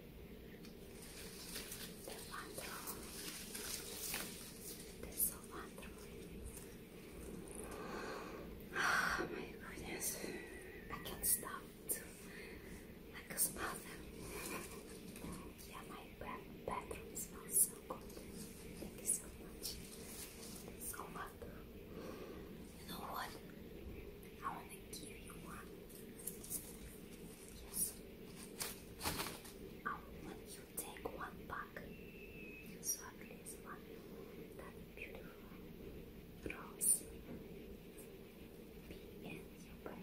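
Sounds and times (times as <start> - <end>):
rustling of stems and leaves: 0.6 - 8.7, 9.7 - 31.3
woman whispering: 1.8 - 7.7, 8.7 - 21.8, 22.6 - 23.6, 24.3 - 28.1, 29.8 - 32.0, 32.6 - 35.8, 36.4 - 37.2, 38.8 - 40.0.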